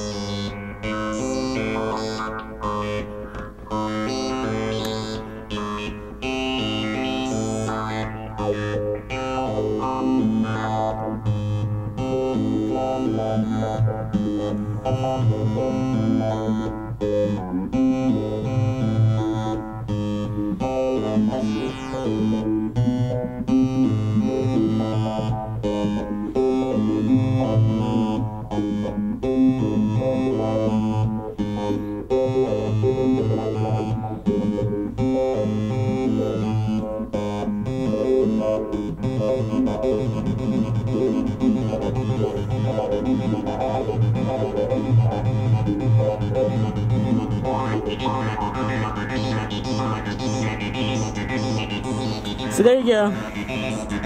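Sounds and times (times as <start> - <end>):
looping stepped synth notes: 0.0 - 54.0
gliding synth sweep: 37.9 - 54.0.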